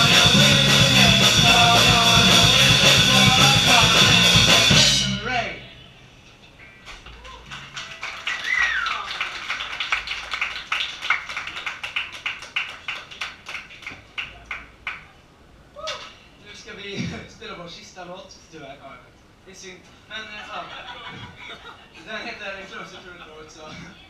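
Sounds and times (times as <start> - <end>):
rock band final chord: 0.0 - 5.8
scattered applause: 6.8 - 15.2
audience cheering: 7.2 - 12.3.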